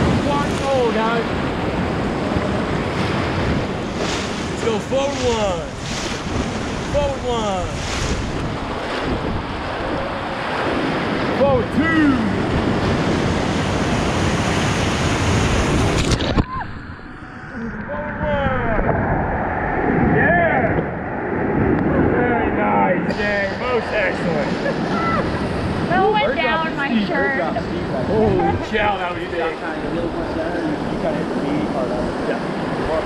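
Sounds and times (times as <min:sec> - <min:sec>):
whitewater rapid rushing: 0:00.0 - 0:16.4, 0:23.1 - 0:33.0
wave breaking over raft: 0:00.0 - 0:33.0
people shouting: 0:24.8 - 0:25.4.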